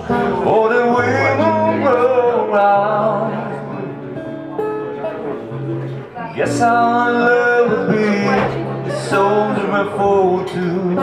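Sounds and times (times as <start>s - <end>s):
man singing: 0.0s - 4.1s, 6.3s - 11.0s
acoustic guitar playing: 0.0s - 11.0s.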